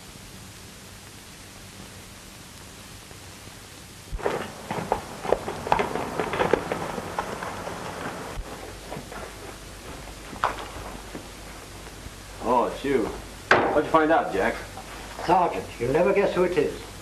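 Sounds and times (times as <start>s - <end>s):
steady hiss: 0.0s - 17.0s
horse galloping on dirt: 4.2s - 12.1s
single knock: 13.5s - 13.8s.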